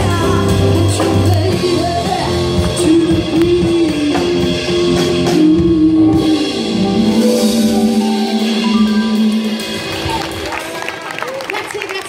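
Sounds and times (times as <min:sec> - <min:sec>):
live band playing: 0:00.0 - 0:12.0
held low note: 0:05.2 - 0:10.5.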